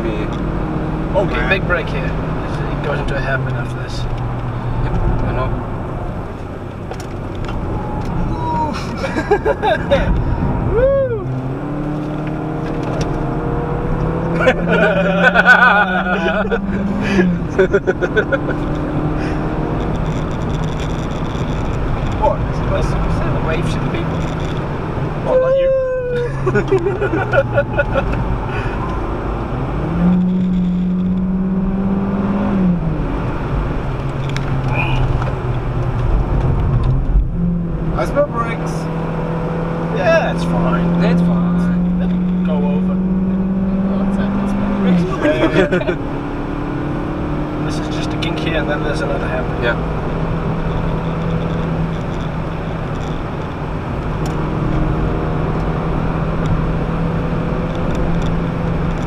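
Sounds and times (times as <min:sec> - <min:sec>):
car engine accelerating: 0:00.0 - 0:59.0.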